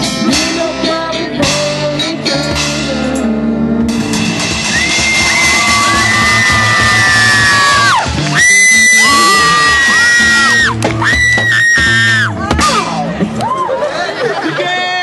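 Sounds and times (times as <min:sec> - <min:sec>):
live rock band: 0:00.0 - 0:14.5
long high held yells: 0:04.7 - 0:10.7.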